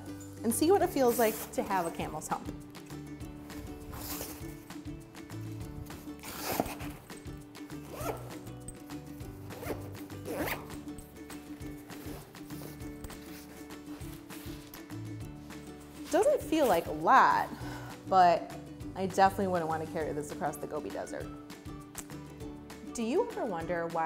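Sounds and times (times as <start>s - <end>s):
soft background music: 0.0s - 24.0s
backpack zipper pulled: 3.8s - 4.6s, 6.1s - 7.1s, 7.8s - 8.4s, 9.5s - 10.9s, 11.9s - 14.8s.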